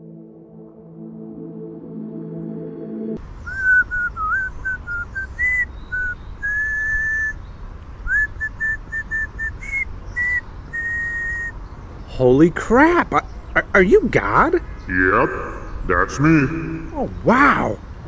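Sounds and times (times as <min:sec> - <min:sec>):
soft ambient music: 0:00.0 - 0:03.2, 0:14.9 - 0:17.4
man whistling a tune: 0:03.5 - 0:07.4, 0:08.1 - 0:11.5.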